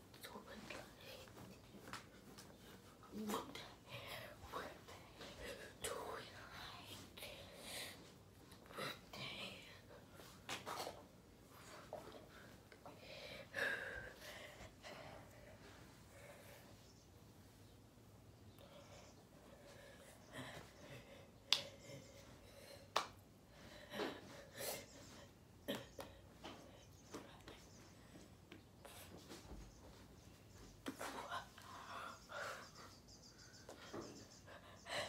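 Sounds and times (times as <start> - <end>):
person whispering: 0.1 - 1.7, 3.0 - 7.6, 8.7 - 10.1.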